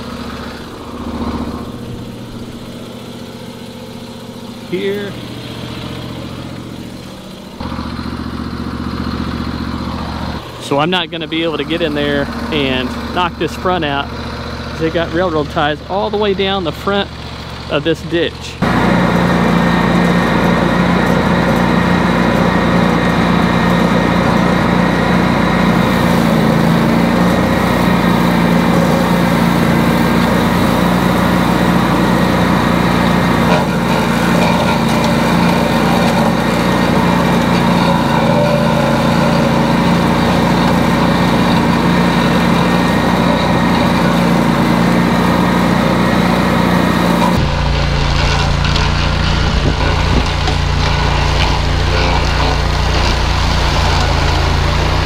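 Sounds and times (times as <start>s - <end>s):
tractor brush-cutter droning: 0.0s - 55.0s.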